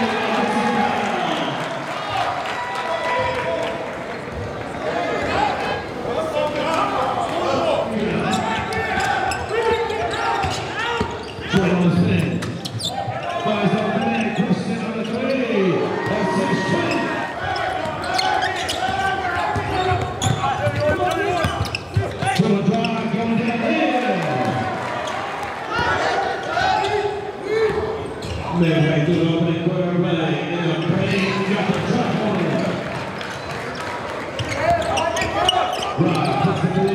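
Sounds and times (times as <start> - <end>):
voices talking and shouting: 4.8 - 32.9.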